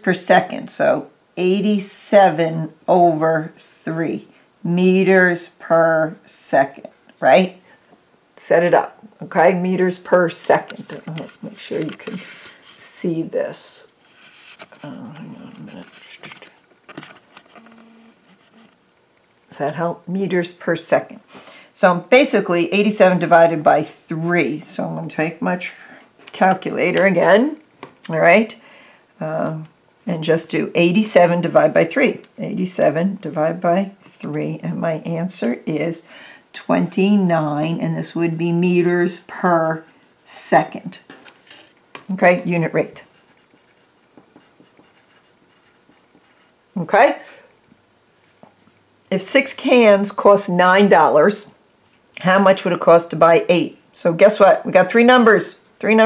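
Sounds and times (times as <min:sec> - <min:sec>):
faint hum: 0:00.8 - 0:20.4
pencil scratching on paper: 0:42.3 - 0:46.6, 0:54.8 - 0:56.0.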